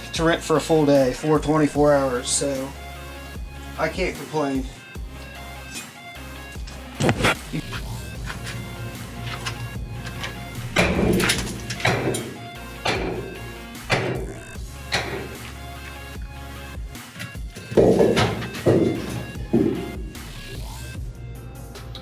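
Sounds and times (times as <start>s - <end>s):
background music steady tones: 0.0s - 22.0s
hammer knocking on concrete: 17.7s - 20.2s.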